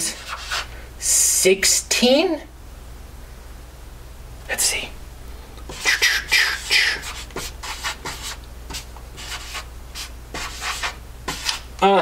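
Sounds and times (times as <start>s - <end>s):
marker scratching on blackboard: 0.0s - 0.7s, 5.7s - 11.7s.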